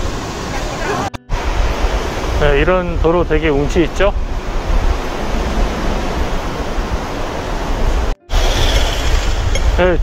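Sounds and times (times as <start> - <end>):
wind on microphone: 1.3 - 10.0.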